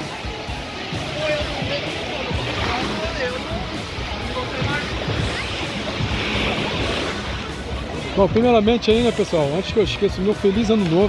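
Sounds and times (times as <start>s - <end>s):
background music: 0.0s - 11.0s
crowd voices: 0.0s - 11.0s
surf breaking: 0.0s - 11.0s.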